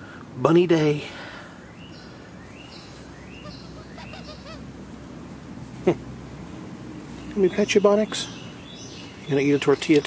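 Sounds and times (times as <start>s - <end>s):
low outdoor hum: 0.0s - 10.0s
man speaking: 0.4s - 1.2s, 7.4s - 8.4s, 9.3s - 10.0s
faint bird chirps: 1.6s - 4.6s.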